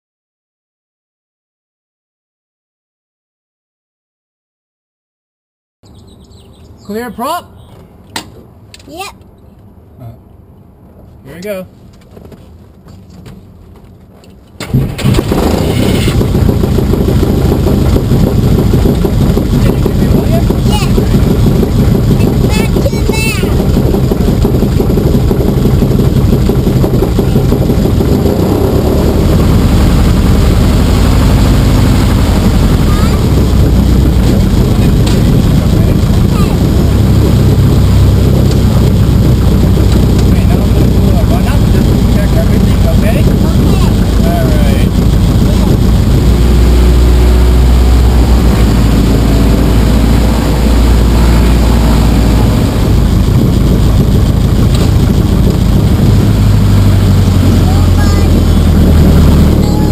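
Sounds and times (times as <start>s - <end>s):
aircraft engine starting and running: 13.7s - 59.9s.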